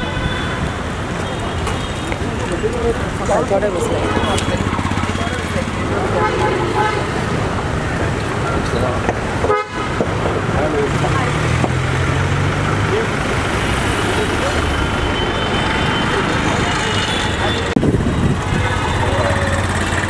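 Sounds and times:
vehicle horns tooting: 0.0s - 3.0s, 3.7s - 7.6s, 9.4s - 10.1s, 14.5s - 19.8s
street traffic: 0.0s - 20.0s
people talking: 1.1s - 9.2s, 10.3s - 19.8s.

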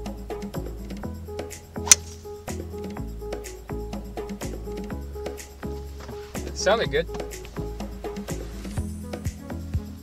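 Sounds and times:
background music: 0.0s - 10.0s
golf club striking ball: 1.8s - 2.6s, 7.1s - 8.0s.

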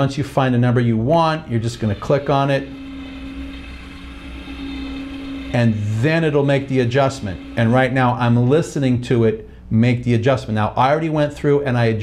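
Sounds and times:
electric adjuster motor humming: 0.9s - 9.8s.

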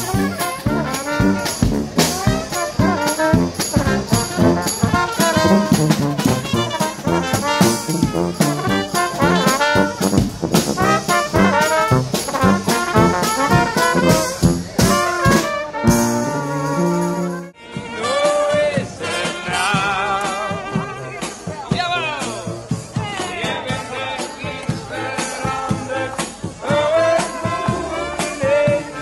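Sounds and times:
marching bass drum: 0.0s - 17.5s
snare drum: 0.0s - 17.5s
trumpets and trombones: 0.0s - 22.6s, 23.6s - 29.0s.

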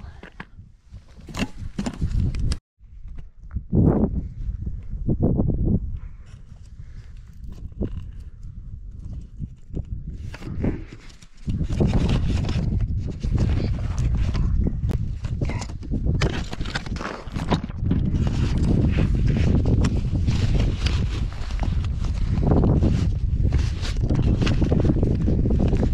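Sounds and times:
clothing and gear rustling on camera: 6.2s - 25.9s.

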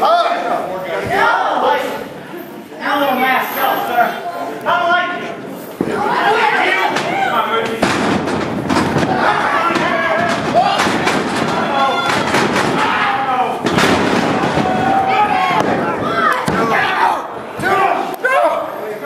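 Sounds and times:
voices shouting and chattering: 0.0s - 19.0s.

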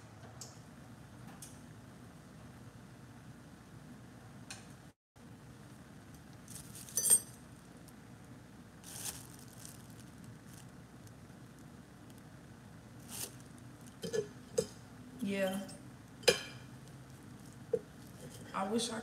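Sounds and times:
low room noise: 0.0s - 19.0s
ringing metal or glass clink: 7.0s - 7.3s.

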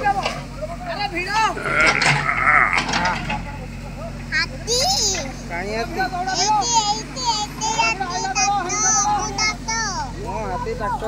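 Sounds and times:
diesel engine running: 0.0s - 11.0s.

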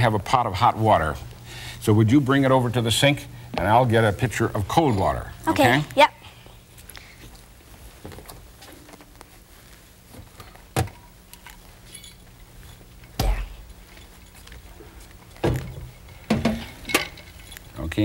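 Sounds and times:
faint steady hum: 0.0s - 18.0s
kettle and pitcher set down: 15.4s - 17.3s.

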